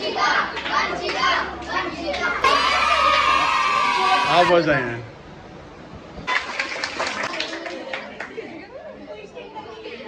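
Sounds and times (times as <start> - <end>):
children clapping: 6.3 - 8.4.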